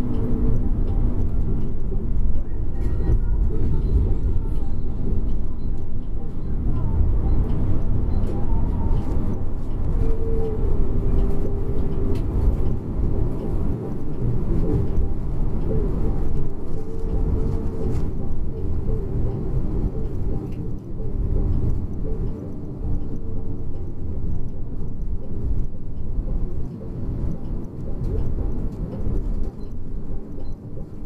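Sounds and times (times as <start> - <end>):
bus engine and road rumble: 0.0 - 31.0.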